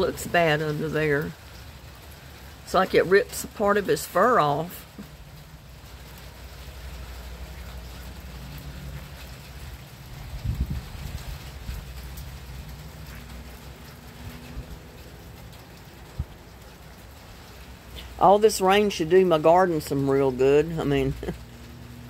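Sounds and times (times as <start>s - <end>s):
steady rain falling: 0.0s - 22.0s.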